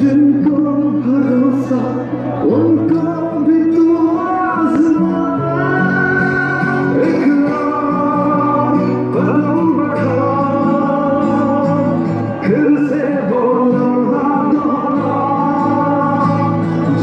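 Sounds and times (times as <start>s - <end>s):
man singing: 0.0s - 17.0s.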